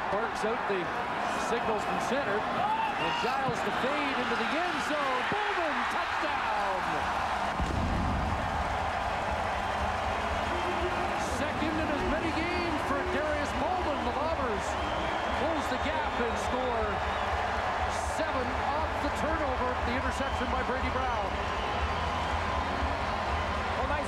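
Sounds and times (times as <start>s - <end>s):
stadium crowd cheering and shouting: 0.0s - 24.0s.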